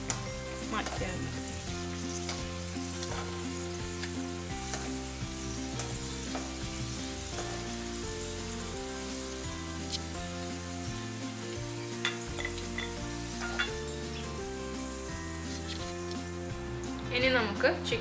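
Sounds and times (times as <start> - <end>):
nuts sizzling in hot oil: 0.0 - 17.2
skimmer clinking against pan: 12.0 - 13.8.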